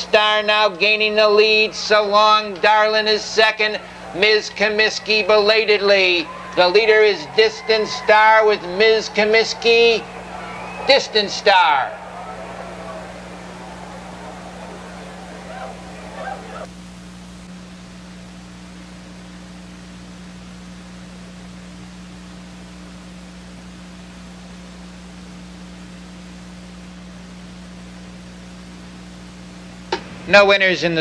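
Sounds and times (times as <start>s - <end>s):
low electrical hum with hiss: 0.0s - 31.0s
background murmur: 2.5s - 16.7s.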